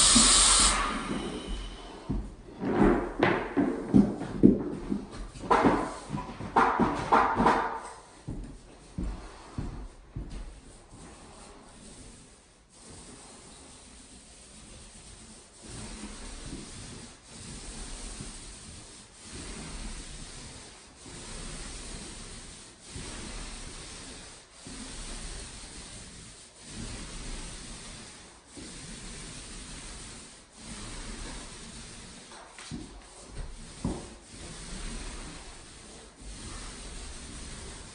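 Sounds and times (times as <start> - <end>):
paint roller swishing on drywall: 0.0 - 37.9.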